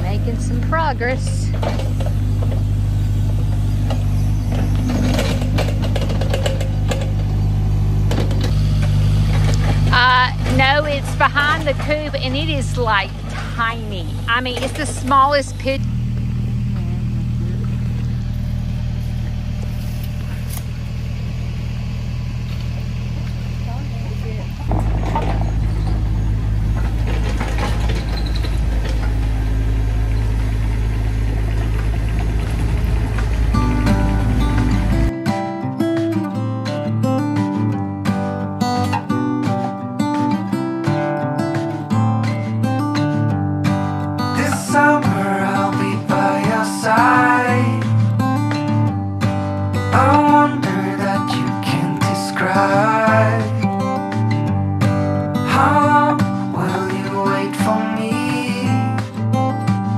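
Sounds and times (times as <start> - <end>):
strummed acoustic guitar music: 0.0 - 15.8, 24.6 - 59.9
excavator diesel engine running: 0.0 - 59.9.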